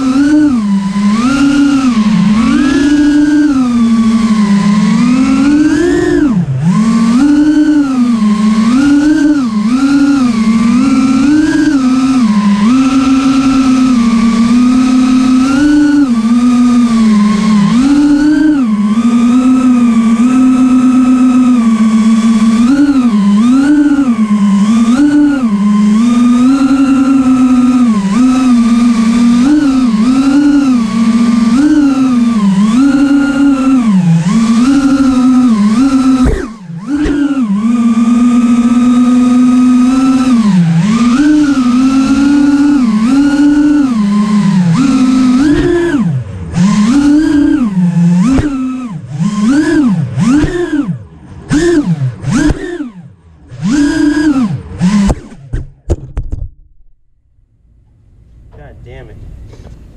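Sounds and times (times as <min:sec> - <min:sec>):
drone motors whining: 0:00.0 - 0:59.9.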